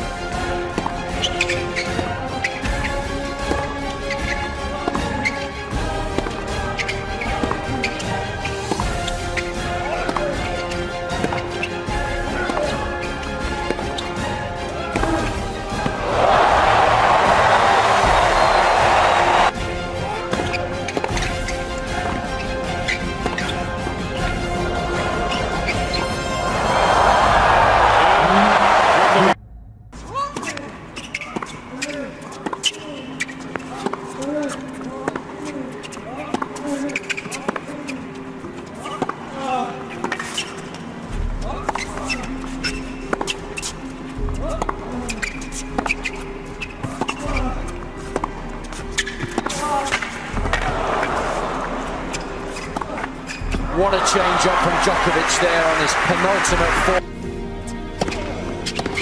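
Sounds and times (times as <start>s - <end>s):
background music with held tones: 0.0s - 59.0s
shoe squeaks: 1.0s - 19.5s, 20.1s - 24.4s, 25.2s - 26.3s, 30.4s - 51.2s, 52.0s - 53.7s, 58.0s - 59.0s
tennis ball strikes: 10.0s - 11.4s
crowd noise: 15.5s - 19.5s, 24.6s - 29.4s, 50.2s - 57.0s.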